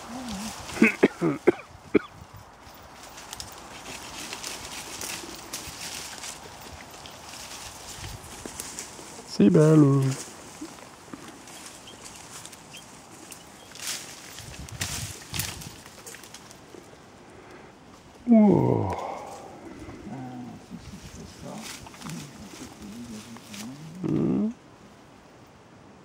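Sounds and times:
person saying ah: 0.0s - 0.6s, 18.3s - 20.8s, 22.6s - 24.6s.

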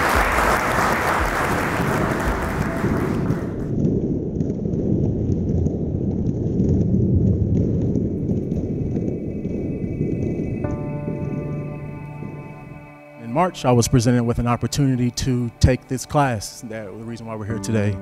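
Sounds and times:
audience applauding: 0.0s - 3.7s
low steady rumbling: 1.4s - 15.9s.

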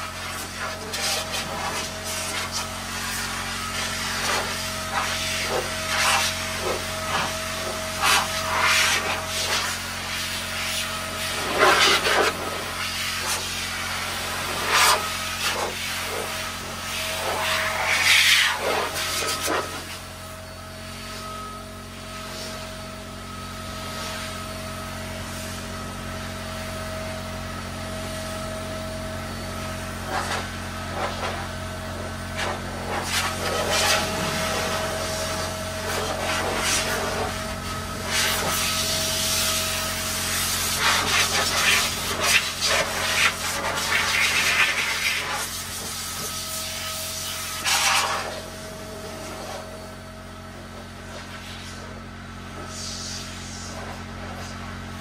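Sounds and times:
low machine hum: 0.0s - 55.0s.

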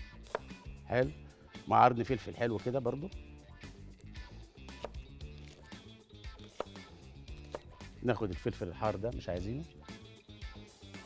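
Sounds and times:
soft background music: 0.0s - 11.0s
knife chopping on plastic board: 0.2s - 0.6s, 4.7s - 5.0s, 6.4s - 7.7s.

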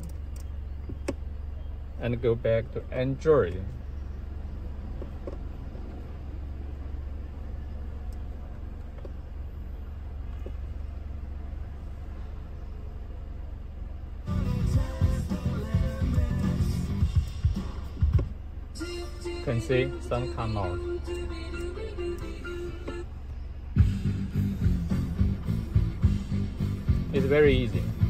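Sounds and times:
low hum in car cabin: 0.0s - 28.0s
music through car speakers: 14.2s - 28.0s.

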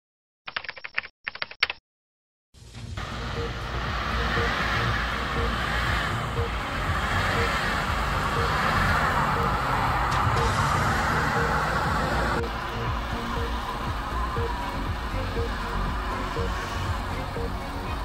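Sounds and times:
rapid clicking like typing: 0.5s - 1.8s
vehicle rumble on snowy road: 2.6s - 18.0s.

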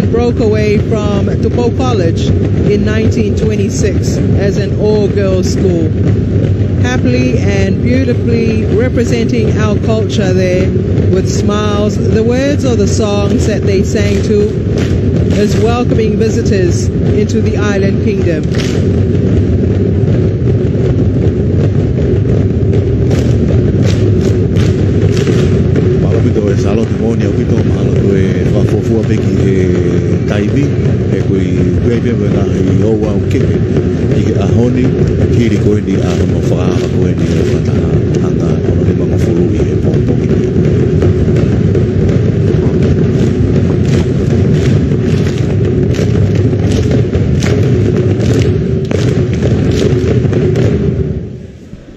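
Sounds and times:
drumming: 0.0s - 51.8s
sharp beats: 0.0s - 51.9s.

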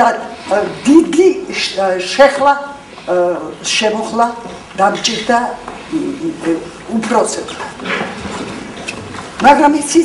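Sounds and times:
elderly woman speaking: 0.0s - 7.8s, 9.4s - 10.0s.

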